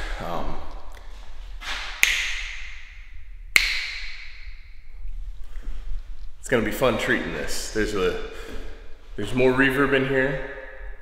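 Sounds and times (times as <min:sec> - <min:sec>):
finger snaps with reverb: 0:02.0 - 0:02.9, 0:03.5 - 0:04.6.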